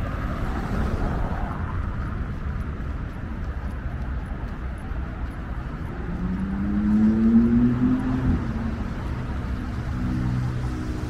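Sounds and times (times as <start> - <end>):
road traffic rumble: 0.0 - 11.0
vehicle engine accelerating past: 6.0 - 11.0.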